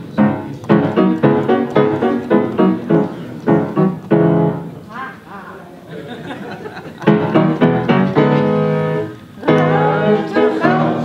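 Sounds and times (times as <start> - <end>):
piano chords: 0.0 - 4.9, 7.0 - 11.0
group of voices singing: 9.4 - 11.0.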